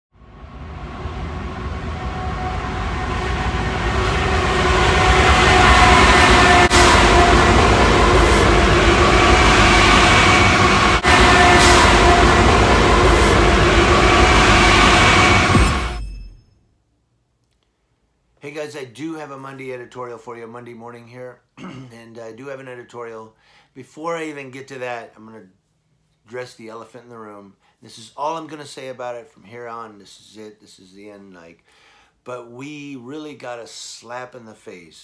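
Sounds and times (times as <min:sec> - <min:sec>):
diesel locomotive rumbling past: 0:00.1 - 0:16.4
locomotive held tones: 0:00.3 - 0:16.5.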